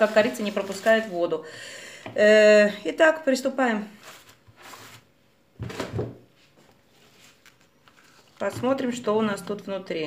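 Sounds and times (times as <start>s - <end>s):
leaves and plastic pot rustling: 0.0s - 1.4s.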